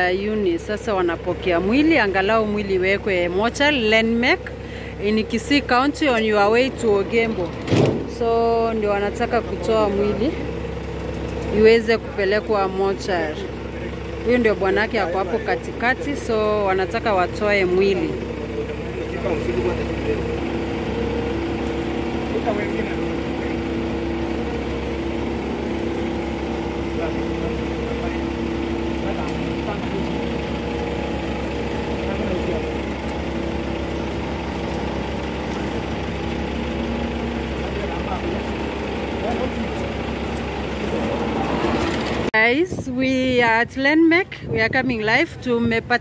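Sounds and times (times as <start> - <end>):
vehicle engine idling: 0.0 - 46.0
murmuring voices: 8.7 - 42.2.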